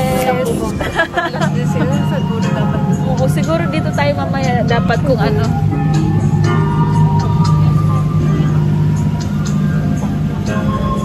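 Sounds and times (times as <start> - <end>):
boat motor droning: 0.0 - 11.0.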